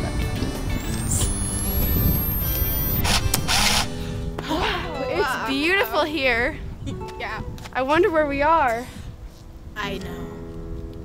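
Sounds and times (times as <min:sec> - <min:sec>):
high-pitched rising whine: 0:00.0 - 0:04.5
background music: 0:00.0 - 0:11.0.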